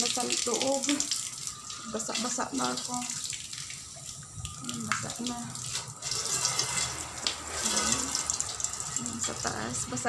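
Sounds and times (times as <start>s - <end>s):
hose spraying water on wood: 5.0s - 10.0s.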